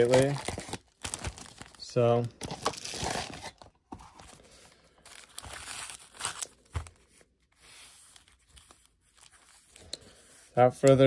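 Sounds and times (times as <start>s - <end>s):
foil packs crinkling: 0.0s - 7.1s.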